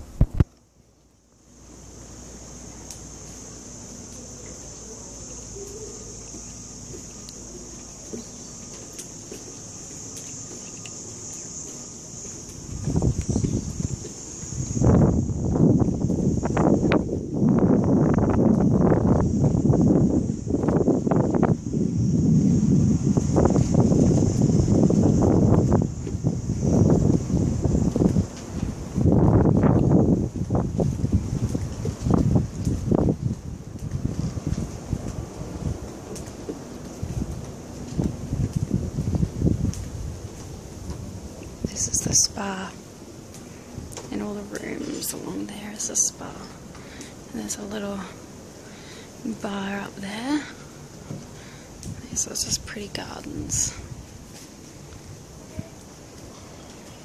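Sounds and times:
wind buffeting microphone: 0.0 - 0.5, 1.8 - 57.0.

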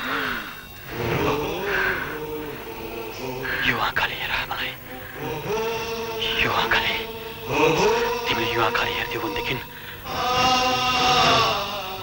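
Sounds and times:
choral note held: 4.8 - 12.0.

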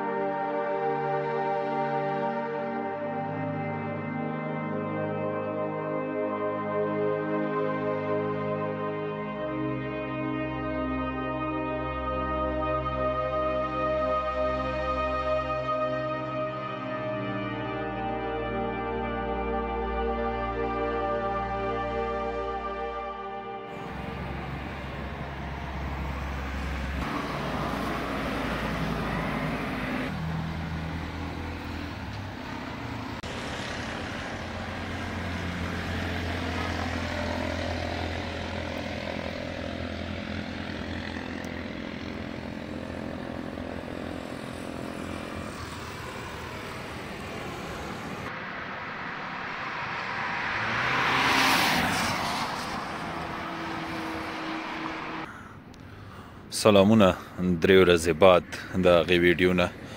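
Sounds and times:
traffic engine hum: 0.2 - 59.9
car passing with tyre hiss: 23.7 - 55.5.

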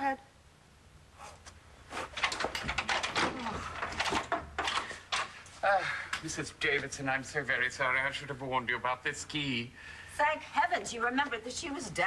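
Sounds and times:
door unlocking and opening: 2.2 - 5.3
lock clicks and clatter: 2.2 - 5.3.

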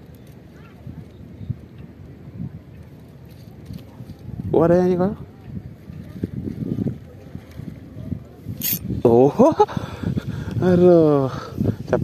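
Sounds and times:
wind rumble: 0.0 - 12.0
microphone handling noise: 8.4 - 10.8
brief sharp hiss: 8.6 - 8.8.

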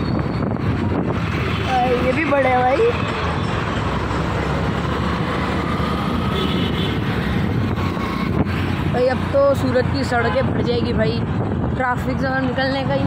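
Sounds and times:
motorbikes: 0.0 - 13.0
street traffic: 0.0 - 13.0
tractor engine: 0.6 - 9.9.

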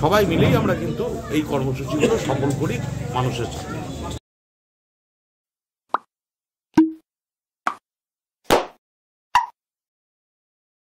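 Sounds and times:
short pop sound effects: 6.8 - 7.0, 8.5 - 8.8, 9.4 - 9.6.

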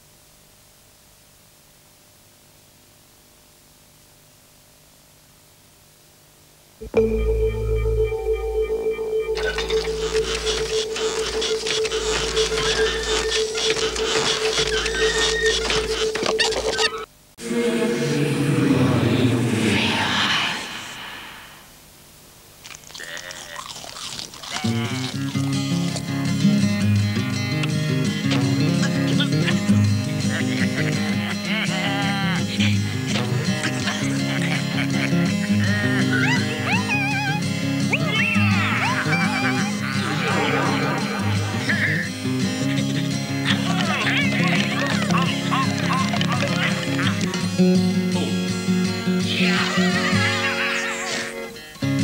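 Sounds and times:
music: 6.8 - 17.0, 24.8 - 52.0
cartoon music: 6.8 - 19.0.

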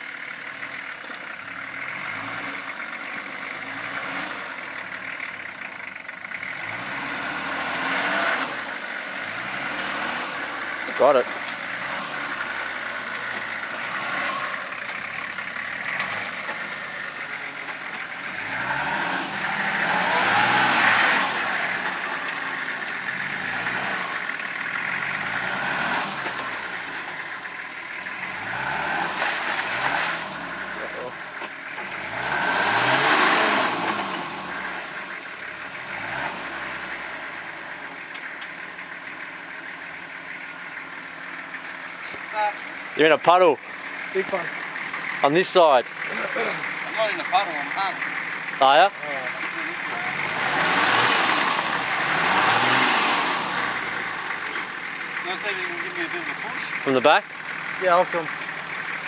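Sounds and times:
engine revving: 0.0 - 59.0.

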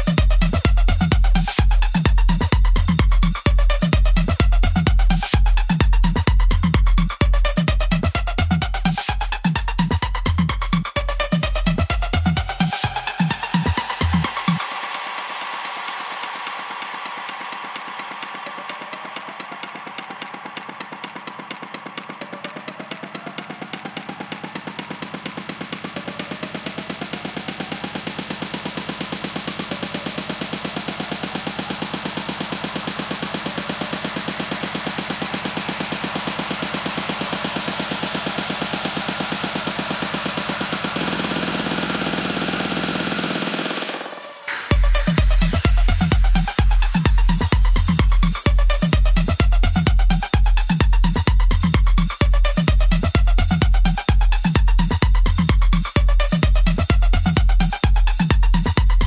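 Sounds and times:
rapid snare roll: 10.8 - 59.0
low bass pulse: 44.7 - 59.0.

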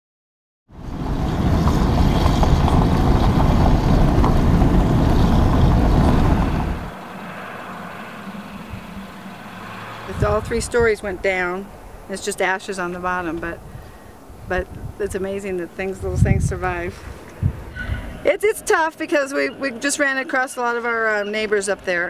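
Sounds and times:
tyres on dirt road: 0.7 - 22.0
vehicle engine rumble: 0.7 - 22.0.

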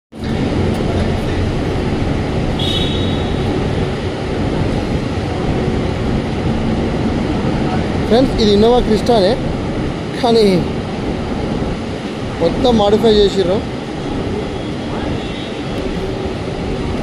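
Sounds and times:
vehicle rumble: 0.1 - 17.0.

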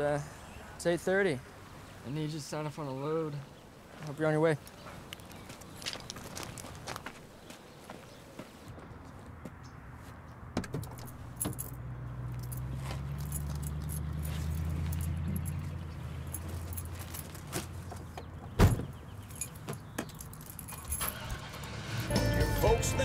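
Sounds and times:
keys jingling: 10.8 - 17.5, 19.2 - 21.7
truck door shutting thump: 18.6 - 19.0
music: 22.0 - 23.0.

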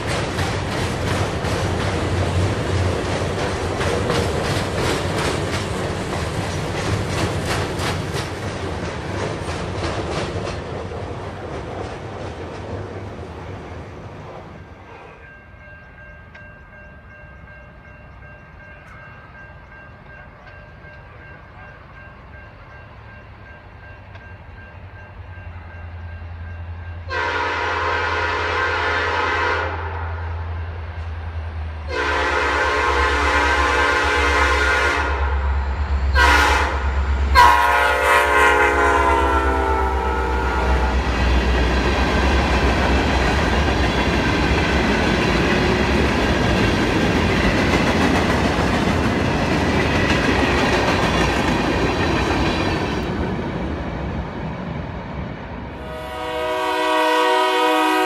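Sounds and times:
train cars clattering on rails: 0.0 - 22.7, 41.0 - 54.8
train horn blasts: 27.0 - 30.5, 31.9 - 41.1, 55.8 - 58.0.

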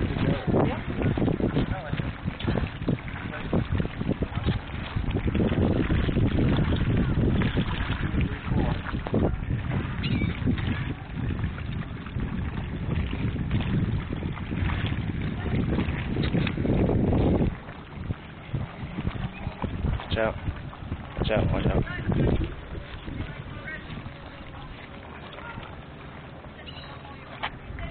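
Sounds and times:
wind buffeting microphone: 0.0 - 27.9
faint voices: 17.8 - 27.9.

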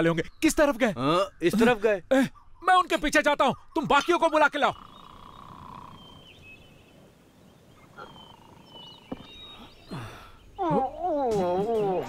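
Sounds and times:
faint bird chirps: 0.0 - 12.0.

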